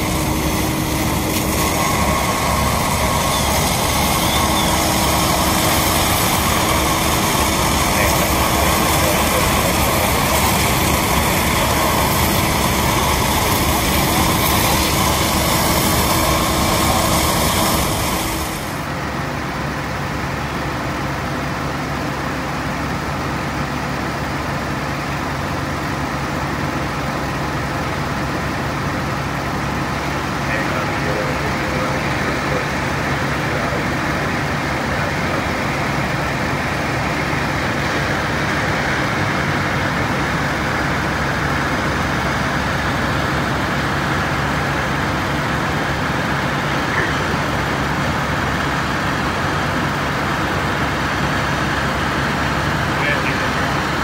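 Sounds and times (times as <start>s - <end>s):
water rushing from hoses: 0.0s - 19.0s
fire engine pumps humming: 0.0s - 54.0s.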